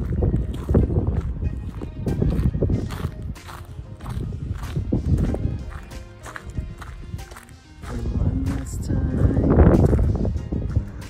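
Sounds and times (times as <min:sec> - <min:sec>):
music: 0:00.0 - 0:11.0
wind buffeting microphone: 0:00.0 - 0:11.0.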